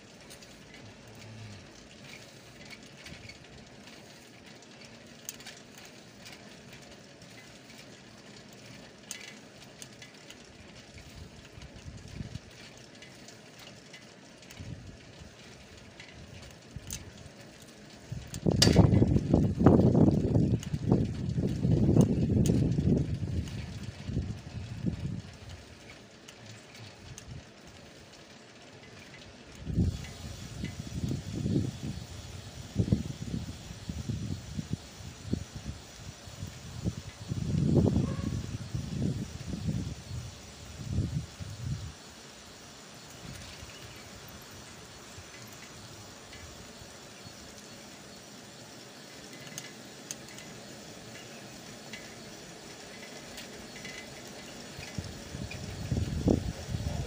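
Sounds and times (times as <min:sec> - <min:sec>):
small ticks and rattles: 0:00.0 - 0:57.0
wind buffeting microphone: 0:10.4 - 0:12.7, 0:14.5 - 0:25.9, 0:29.5 - 0:42.1, 0:49.1 - 0:57.0.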